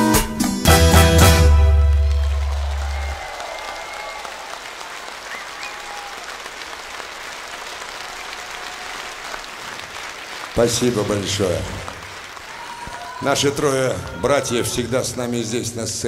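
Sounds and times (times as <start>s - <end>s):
audience applauding: 1.4s - 14.8s.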